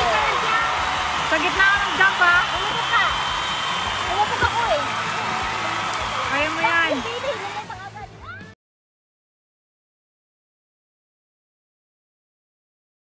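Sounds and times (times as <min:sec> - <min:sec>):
waterfall rushing into pool: 0:00.0 - 0:07.9.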